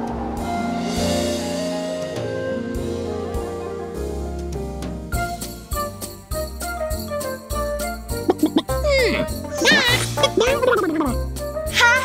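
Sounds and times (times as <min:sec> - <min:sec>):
cheery christmas music: 0:00.0 - 0:12.0
cartoon character vocal noises: 0:08.9 - 0:11.2.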